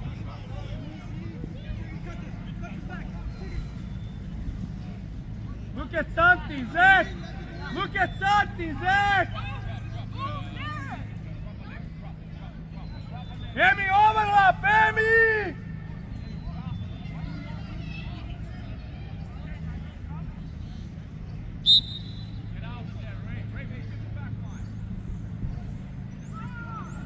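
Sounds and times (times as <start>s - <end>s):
people shouting: 13.6s - 15.8s.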